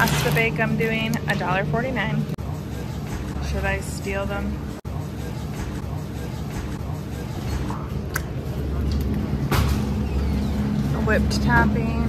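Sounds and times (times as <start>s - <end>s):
refrigeration hum: 0.0s - 12.0s.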